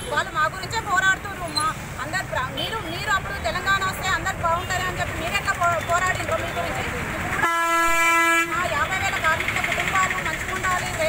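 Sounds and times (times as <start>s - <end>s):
woman speaking: 8.6s - 11.0s.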